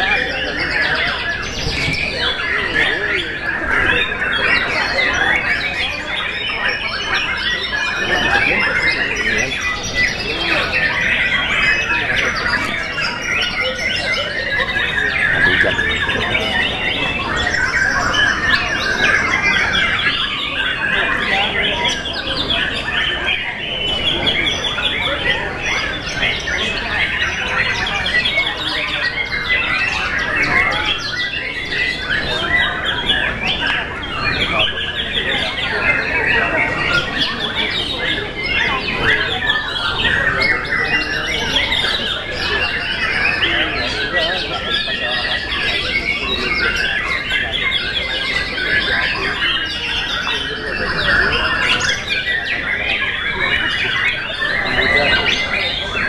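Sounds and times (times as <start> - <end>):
birds singing whistles and trills: 0.0 - 56.0.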